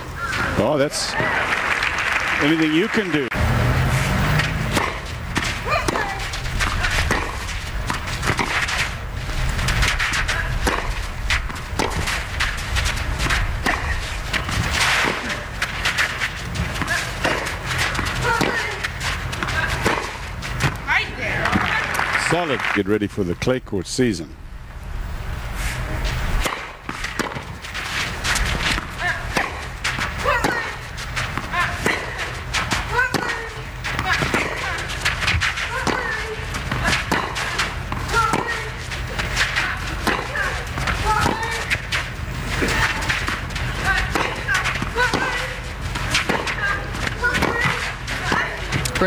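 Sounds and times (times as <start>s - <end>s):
racket striking tennis ball: 4.4s - 21.7s, 26.3s - 49.0s.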